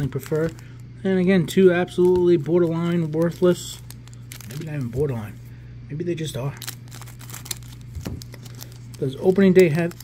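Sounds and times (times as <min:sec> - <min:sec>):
foil wrapper crinkling: 0:00.0 - 0:00.9, 0:01.6 - 0:05.4, 0:06.4 - 0:10.0.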